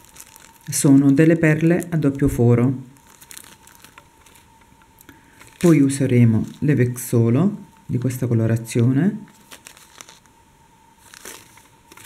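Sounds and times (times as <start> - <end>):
plastic bag crinkling: 0.0 - 7.2, 9.3 - 10.4, 11.0 - 12.0.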